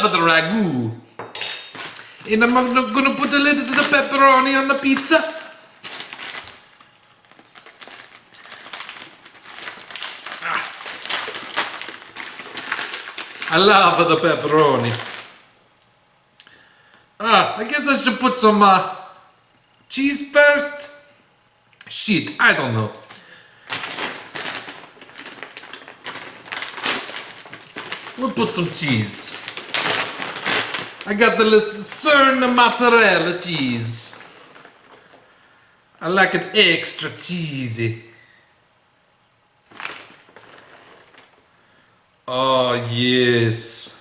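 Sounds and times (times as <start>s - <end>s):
plastic package crinkling: 1.7s - 15.5s, 23.0s - 36.0s, 39.6s - 41.5s.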